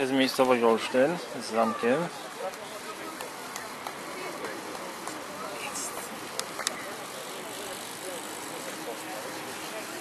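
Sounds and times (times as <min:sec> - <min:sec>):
faint indistinct voices: 0:00.0 - 0:10.0
steady hiss: 0:00.0 - 0:10.0.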